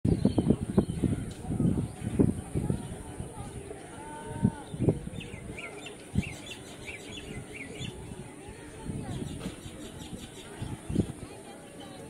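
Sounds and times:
steady background noise: 0:00.1 - 0:12.0.

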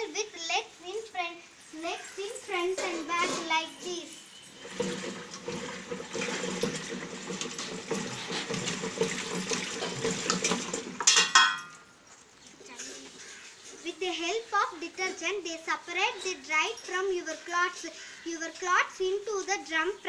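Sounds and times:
water sloshing in washing machine drum: 0:04.4 - 0:11.6.

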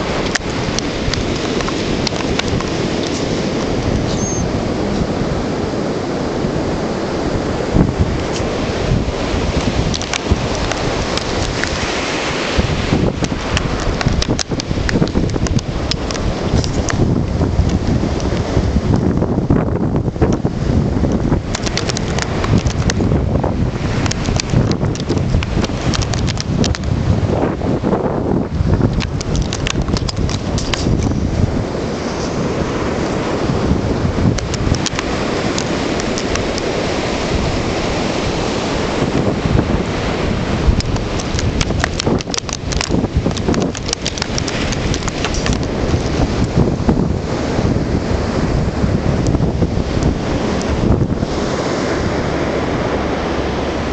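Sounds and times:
ocean surf: 0:00.0 - 0:53.9
wind buffeting microphone: 0:00.0 - 0:53.9
crackles and knocks: 0:00.2 - 0:04.2, 0:09.6 - 0:11.9, 0:13.1 - 0:19.1, 0:21.1 - 0:23.2, 0:23.9 - 0:27.0, 0:28.8 - 0:31.2, 0:34.3 - 0:36.7, 0:40.7 - 0:46.6.

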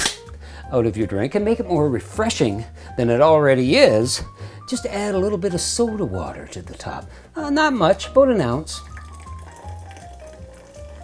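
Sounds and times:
background music: 0:00.0 - 0:11.0
soda fizzing over ice: 0:08.8 - 0:11.0.

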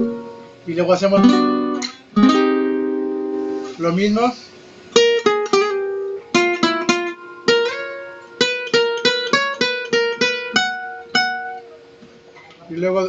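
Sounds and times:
nylon-string guitar plucked lead: 0:00.0 - 0:03.9, 0:04.9 - 0:12.6.

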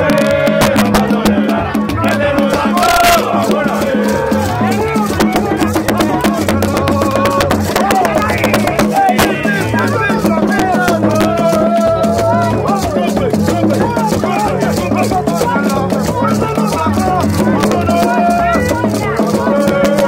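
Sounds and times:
loud group singing: 0:00.0 - 0:20.0
low repeating beat: 0:00.0 - 0:20.0
shakers rattling: 0:00.6 - 0:20.0.

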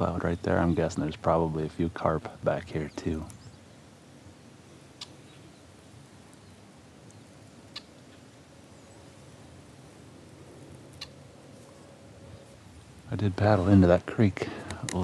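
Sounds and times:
calm outdoor ambience: 0:00.0 - 0:15.0.

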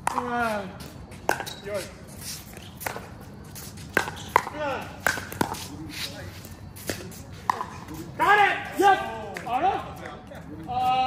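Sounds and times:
shoes shuffling on hard court: 0:00.0 - 0:11.0
paddles striking ball: 0:03.9 - 0:05.6.

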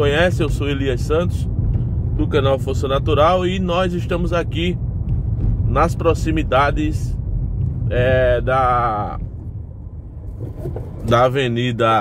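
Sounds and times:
car engine rumble: 0:00.0 - 0:12.0
road noise: 0:00.0 - 0:12.0.

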